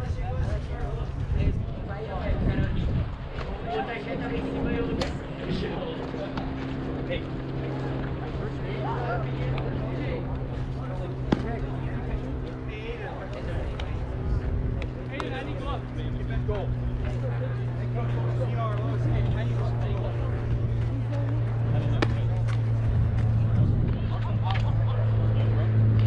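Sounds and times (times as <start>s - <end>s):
distant shouts and chatter: 0.0s - 26.0s
low mechanical hum: 0.0s - 26.0s.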